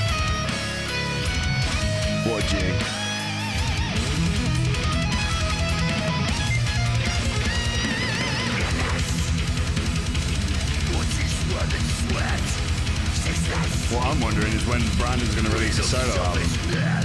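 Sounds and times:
electric guitar solo: 0:00.0 - 0:13.0
rhythm guitar: 0:00.0 - 0:17.0
fast drumming: 0:03.7 - 0:17.0.

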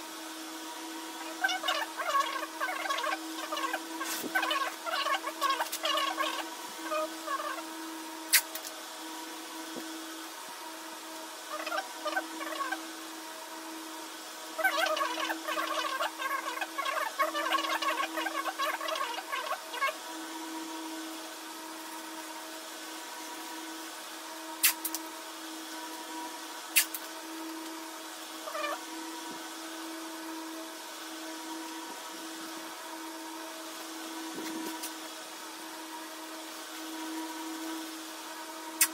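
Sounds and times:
steady low hum: 0:00.0 - 0:38.9
fowl warbling calls: 0:01.2 - 0:07.6, 0:11.5 - 0:12.8, 0:14.6 - 0:20.0, 0:28.5 - 0:28.8.

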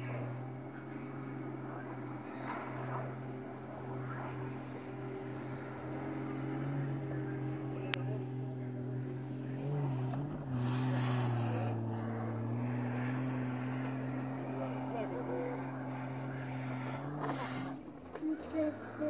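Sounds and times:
car engine running: 0:00.0 - 0:19.0.

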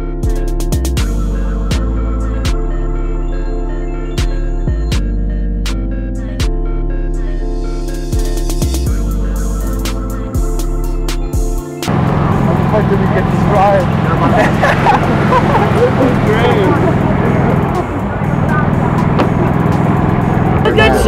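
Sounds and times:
electronic music: 0:00.0 - 0:21.0
low hum of vehicle: 0:11.9 - 0:21.0
people talking and calling out: 0:11.9 - 0:21.0.

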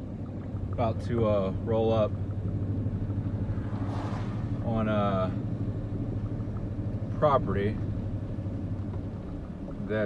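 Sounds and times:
engine and road drone in vehicle: 0:00.0 - 0:10.0.

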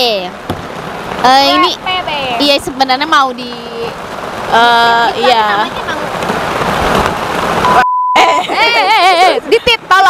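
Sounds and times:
heavy rain falling: 0:00.0 - 0:10.0
high-pitched censor bleep: 0:07.6 - 0:08.2.

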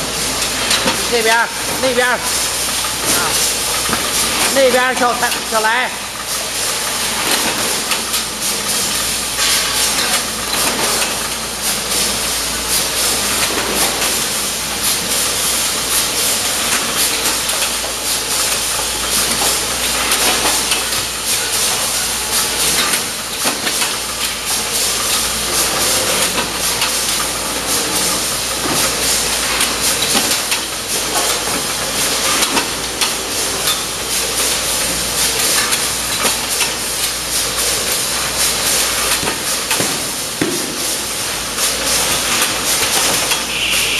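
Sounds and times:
packing machine hissing: 0:00.0 - 0:43.9.

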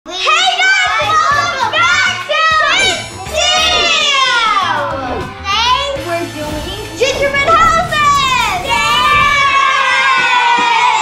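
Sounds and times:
background music: 0:00.1 - 0:10.3
children shouting together: 0:08.0 - 0:11.0.

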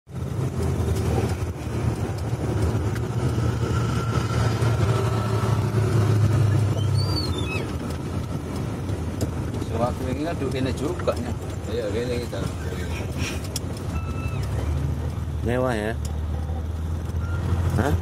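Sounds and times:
vehicle engine and road noise: 0:00.0 - 0:18.0.

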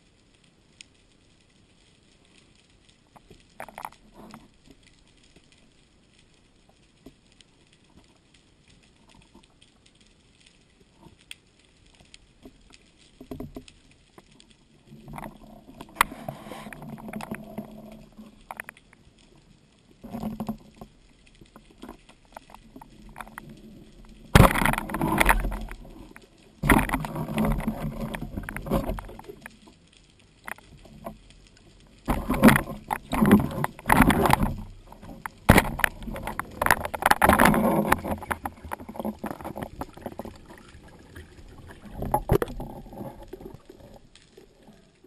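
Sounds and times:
faint underwater crackling: 0:00.0 - 0:45.0
water rush and bubbles: 0:11.8 - 0:45.0
diver movement rustling: 0:31.8 - 0:44.8.

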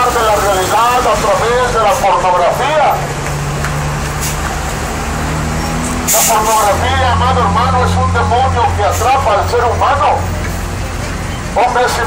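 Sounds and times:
bus engine droning: 0:00.0 - 0:12.0
street traffic: 0:00.0 - 0:12.0.

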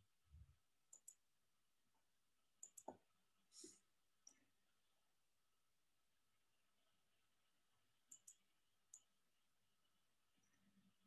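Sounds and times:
faint computer mouse clicks: 0:00.9 - 0:01.2, 0:02.6 - 0:03.0, 0:08.1 - 0:09.1.

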